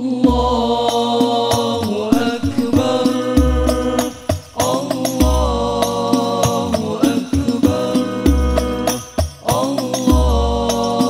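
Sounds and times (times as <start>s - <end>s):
man singing through microphone: 0.0s - 11.0s
frame drums striking: 0.2s - 11.0s
deep bass thumps: 2.1s - 5.8s.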